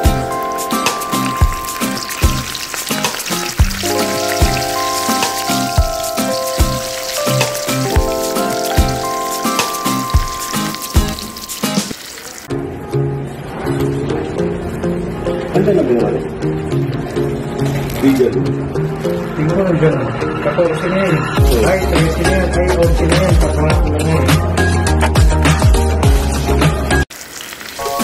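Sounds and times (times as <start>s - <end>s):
background music with steady beat: 0.0s - 11.9s, 20.0s - 27.1s
food deep-frying in oil: 0.0s - 12.5s, 26.0s - 28.0s.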